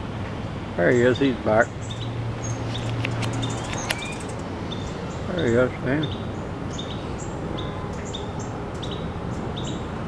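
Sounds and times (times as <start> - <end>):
hummingbird chips and ticks: 1.8 - 7.0.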